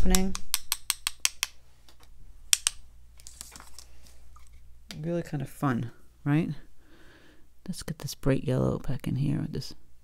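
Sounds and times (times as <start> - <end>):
paintbrush tapping on pencils: 0.0 - 2.8
faint handling noise: 1.7 - 5.1.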